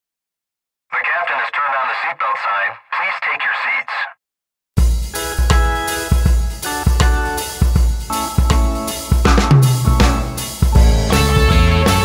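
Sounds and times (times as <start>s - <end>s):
announcement over loudspeaker: 0.9s - 4.2s.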